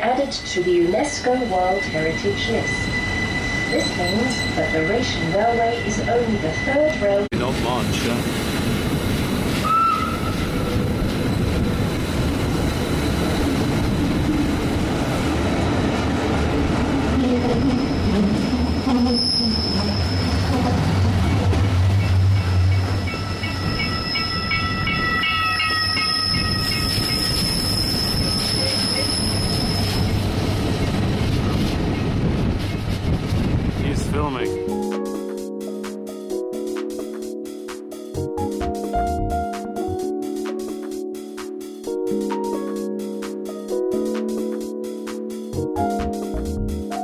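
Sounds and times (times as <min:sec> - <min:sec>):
train wheels rumbling on track: 0:00.0 - 0:35.0
wheels squealing: 0:00.2 - 0:07.2, 0:22.0 - 0:32.9.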